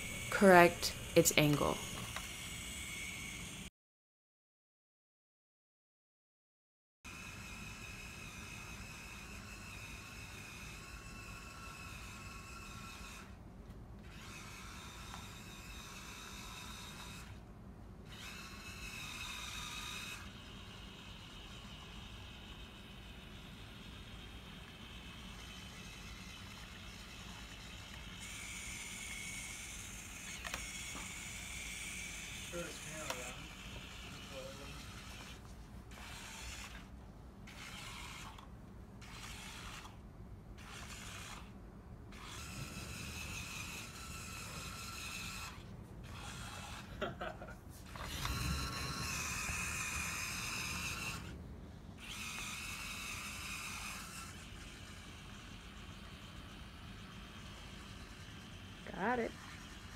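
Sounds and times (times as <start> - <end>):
servo motors whirring: 0.0 - 3.7, 7.1 - 13.4, 14.0 - 17.4, 18.0 - 40.0, 40.6 - 47.1, 47.8 - 51.4, 52.0 - 59.9.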